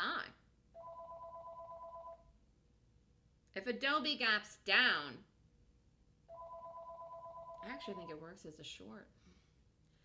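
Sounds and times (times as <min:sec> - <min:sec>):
faint telephone ring: 0:00.8 - 0:02.3, 0:06.3 - 0:08.1.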